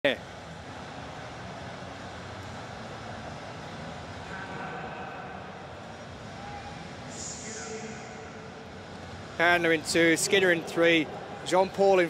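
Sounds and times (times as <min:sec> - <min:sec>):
stadium background hum: 0:00.0 - 0:12.0.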